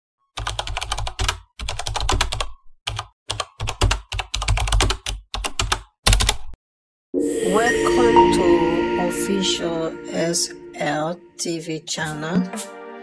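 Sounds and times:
computer keyboard typing: 0.4 - 6.4.

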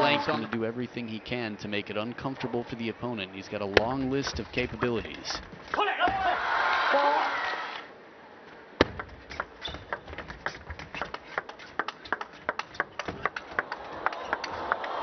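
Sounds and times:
crowd noise: 0.0 - 7.9, 13.2 - 15.0
table tennis ball clicking: 8.8 - 14.6.

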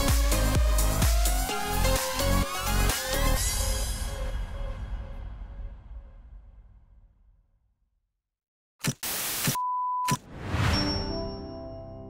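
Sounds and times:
steady test-tone beep: 9.5 - 11.1.

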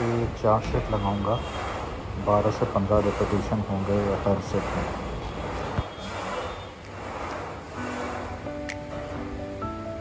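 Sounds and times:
busy gym background noise: 0.0 - 9.8
background music: 7.0 - 10.0.

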